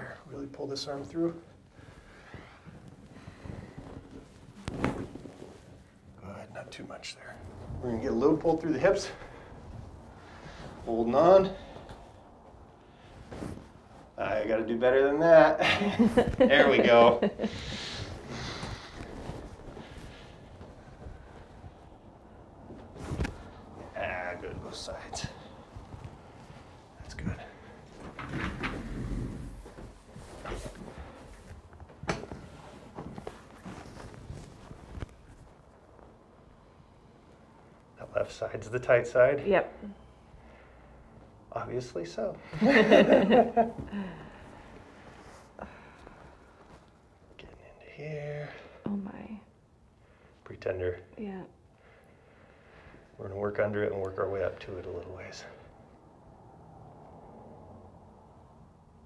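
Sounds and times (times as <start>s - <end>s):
clothing rustling: 0.7s - 6.3s, 7.2s - 14.8s, 15.9s - 38.0s, 42.6s - 47.4s.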